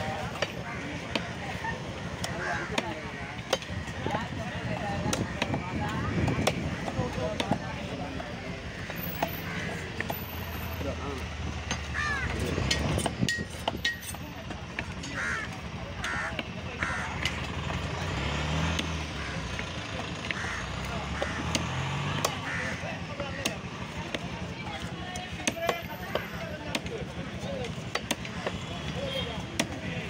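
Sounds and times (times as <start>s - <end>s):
busy market voices: 0.0s - 30.0s
engine rumble: 0.0s - 30.0s
cleaver chopping on wooden block: 5.0s - 7.7s, 11.6s - 14.2s, 18.6s - 22.5s, 25.2s - 27.0s, 27.7s - 29.8s.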